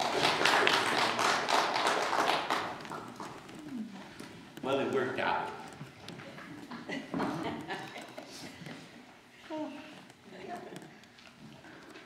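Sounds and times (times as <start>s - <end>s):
applause: 0.0s - 3.4s.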